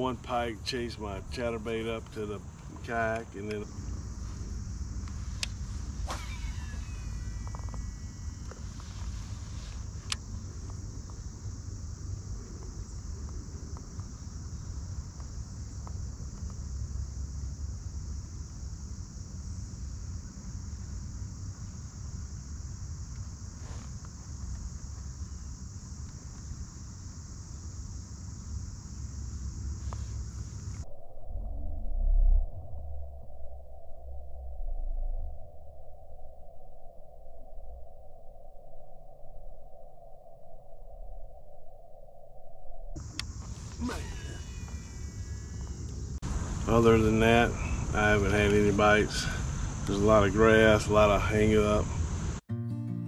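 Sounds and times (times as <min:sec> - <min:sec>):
high-pitched insect drone: 0:00.0 - 0:31.1, 0:43.0 - 0:52.4
low rumble: 0:30.8 - 0:38.9.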